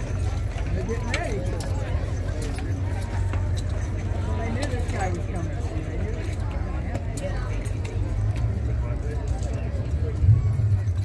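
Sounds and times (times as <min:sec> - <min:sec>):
chatter of voices: 0:00.0 - 0:11.0
hooves clip-clopping on asphalt: 0:00.0 - 0:11.0.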